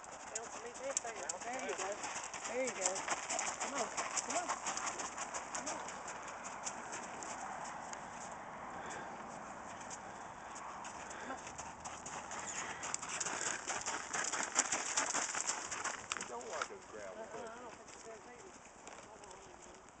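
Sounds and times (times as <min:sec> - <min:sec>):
horse hoofbeats on gravel: 0:00.0 - 0:08.3, 0:09.7 - 0:20.0.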